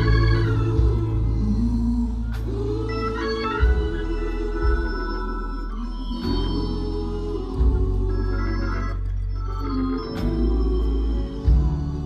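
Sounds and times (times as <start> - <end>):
deep organ bass notes: 0.0 - 12.0
organ playing gospel chords: 0.0 - 12.0.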